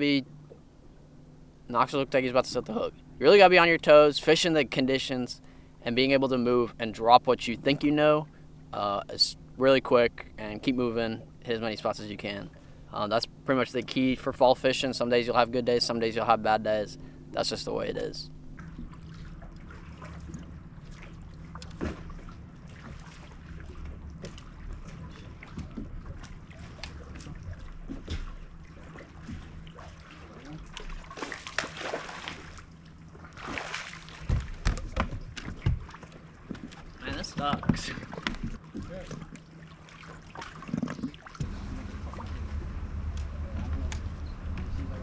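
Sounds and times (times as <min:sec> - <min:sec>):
low hum: 0:00.0 - 0:45.0
lure splashing on water: 0:18.6 - 0:37.0.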